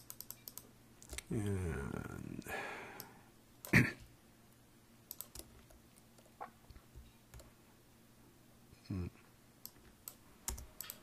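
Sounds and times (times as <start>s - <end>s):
mouse clicks: 0.0s - 1.3s, 5.1s - 6.3s
keyboard keystrokes: 5.1s - 6.3s.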